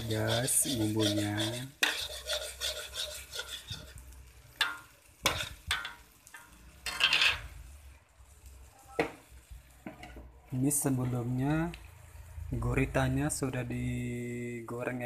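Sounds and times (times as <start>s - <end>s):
metal utensil scraping pan: 0.0s - 7.6s.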